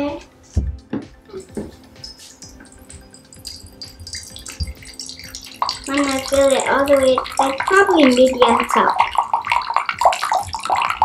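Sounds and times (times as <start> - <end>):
water pouring into a glass: 2.1 - 11.0.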